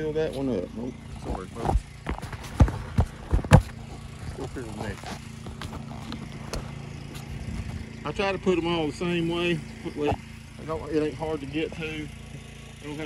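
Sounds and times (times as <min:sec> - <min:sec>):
small engine humming: 0:00.0 - 0:13.0
knocks of wooden beehive boxes: 0:01.2 - 0:07.8, 0:09.8 - 0:12.5.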